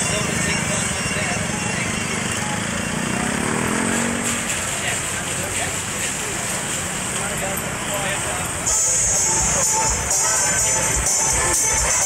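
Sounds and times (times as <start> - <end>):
engine revving: 0.0 - 5.2
vehicle engines running: 0.0 - 12.0.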